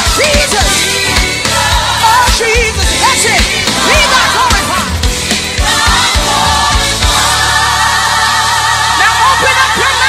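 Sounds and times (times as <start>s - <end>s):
drums: 0.0s - 9.0s
band playing: 0.0s - 10.0s
choir singing: 0.2s - 10.0s.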